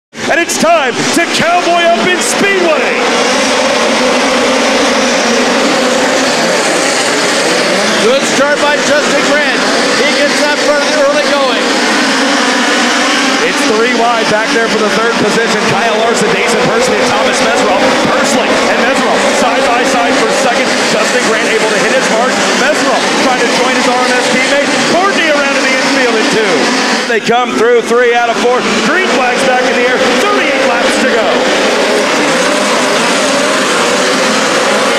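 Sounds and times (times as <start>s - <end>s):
race car engines droning: 0.1s - 34.9s.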